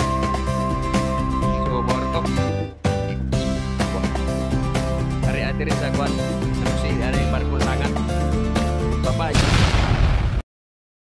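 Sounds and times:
music: 0.0s - 9.4s
explosion boom sound effect: 9.3s - 10.4s.

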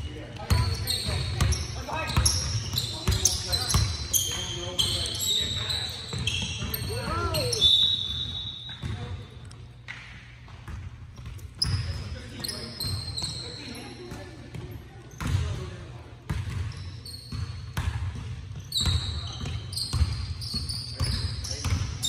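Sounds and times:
sneakers squeaking: 0.0s - 22.0s
basketball bouncing on wooden floor: 16.3s - 20.2s.

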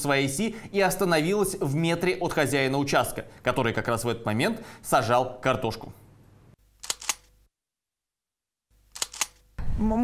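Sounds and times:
camera shutter click: 6.8s - 7.3s, 8.9s - 9.4s.

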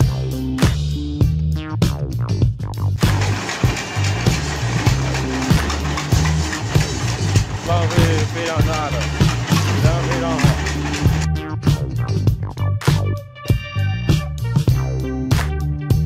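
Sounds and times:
music with repeating bass line: 0.0s - 16.0s
bamboo-cutting machine running: 3.0s - 11.3s.

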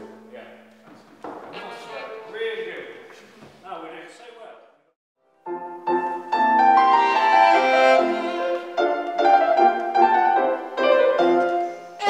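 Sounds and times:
string ensemble chord: 6.7s - 9.0s.

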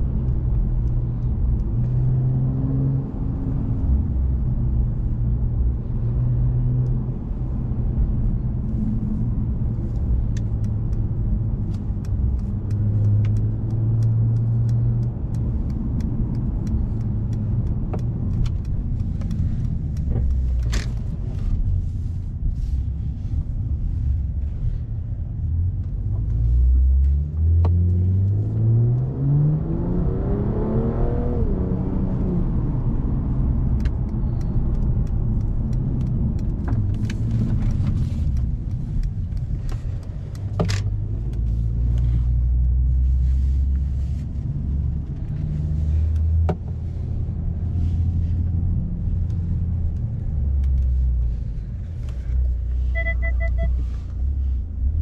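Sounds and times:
car engine accelerating and cruising: 0.0s - 55.0s
sharp clicks: 9.8s - 21.2s, 33.7s - 42.0s
electronic beeps: 52.9s - 53.8s.

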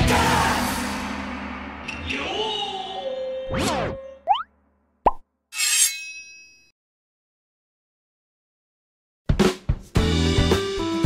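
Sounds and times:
rising cartoon plop: 4.3s - 5.2s.

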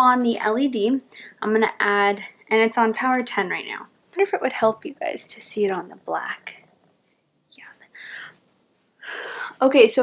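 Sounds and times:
woman whispering: 7.5s - 8.0s.

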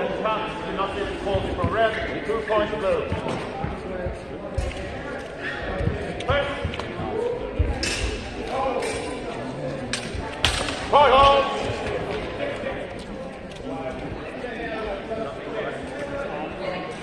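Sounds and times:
background voices: 0.8s - 15.9s
footsteps on hall floor: 1.3s - 10.4s.

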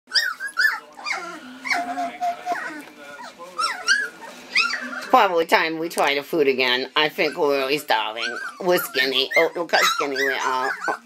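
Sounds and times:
puppies whining and squeaking: 0.1s - 5.5s, 7.0s - 11.0s.

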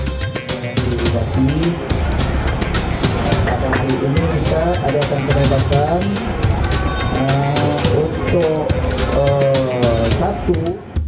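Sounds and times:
man chanting through loudspeaker: 7.1s - 10.8s.

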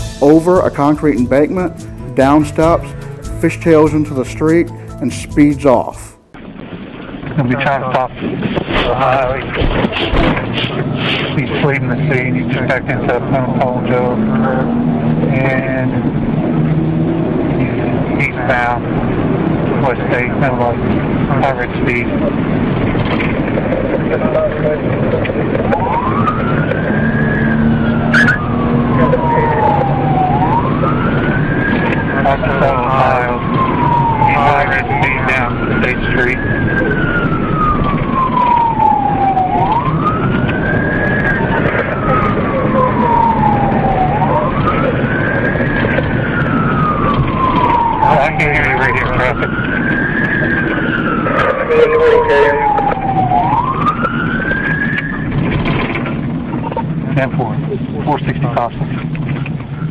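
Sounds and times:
police siren wailing: 0.0s - 3.0s, 5.1s - 59.2s
car engine and road noise: 0.0s - 59.9s.

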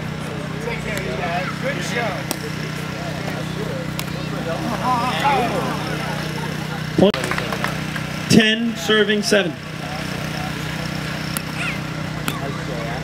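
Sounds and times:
low motor-like hum: 0.0s - 13.0s.

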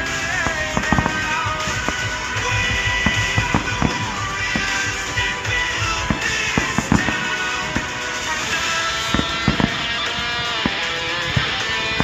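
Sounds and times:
fireworks banging: 0.0s - 12.0s
loud music: 0.0s - 12.0s.

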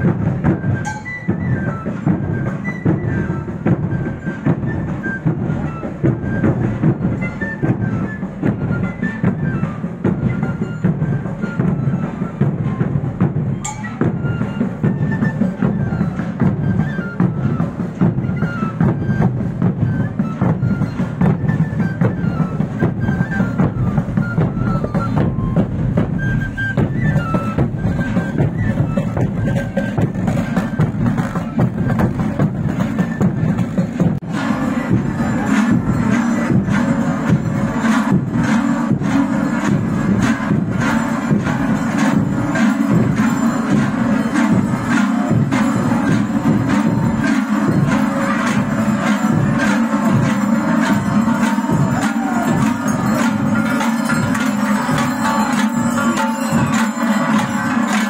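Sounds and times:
marching drum band: 0.0s - 58.0s
high melody notes: 17.2s - 58.0s.

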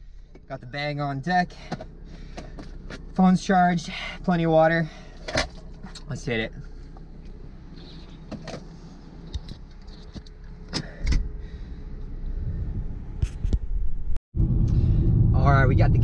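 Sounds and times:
car engine idling: 0.0s - 13.2s
road noise: 0.0s - 16.0s.

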